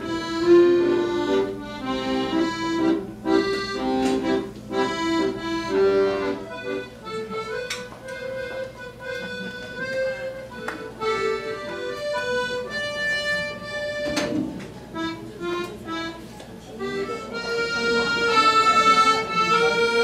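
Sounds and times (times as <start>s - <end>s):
accordions playing: 0.0s - 20.0s.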